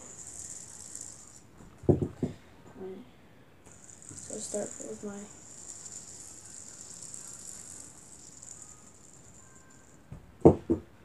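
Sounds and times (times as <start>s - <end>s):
fidget spinner rattling hiss: 0.0s - 1.7s, 3.7s - 10.1s.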